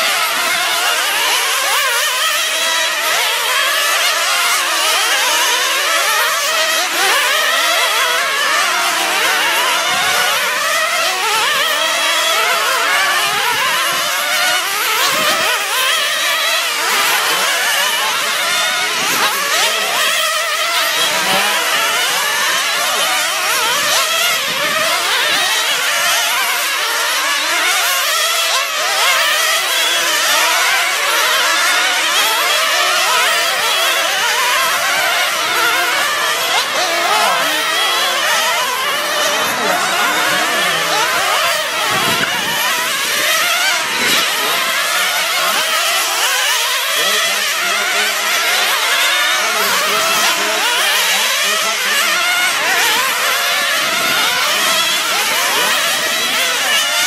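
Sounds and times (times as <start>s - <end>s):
rc car engines buzzing: 0.0s - 57.0s.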